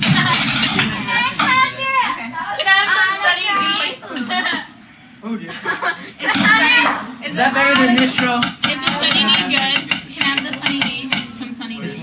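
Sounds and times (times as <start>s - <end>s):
young voices calling and whooping: 0.8s - 4.4s.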